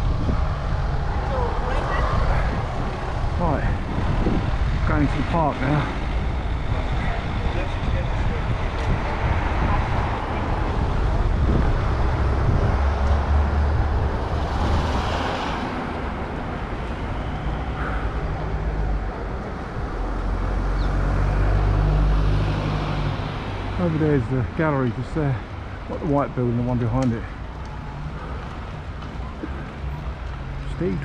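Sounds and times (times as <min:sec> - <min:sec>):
wind rumble on camera: 0:00.0 - 0:23.8
cars driving past: 0:00.0 - 0:31.0.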